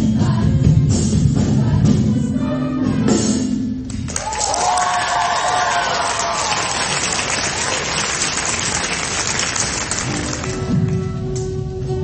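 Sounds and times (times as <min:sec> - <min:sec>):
audience applauding: 0:04.0 - 0:11.1.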